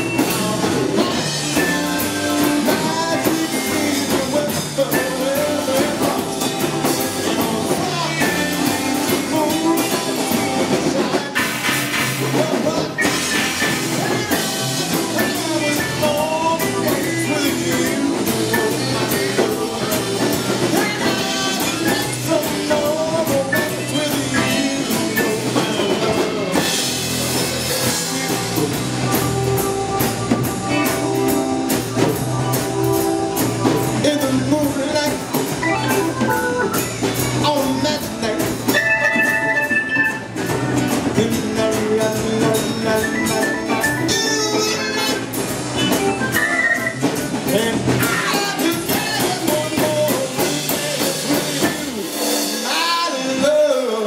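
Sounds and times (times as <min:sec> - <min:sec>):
blues band playing: 0:00.0 - 0:54.0.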